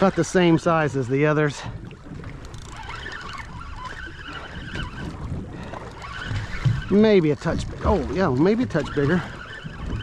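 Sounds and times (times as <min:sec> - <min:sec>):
water washing against boat hull: 0:00.0 - 0:10.0
wind rumbling on microphone: 0:00.0 - 0:10.0.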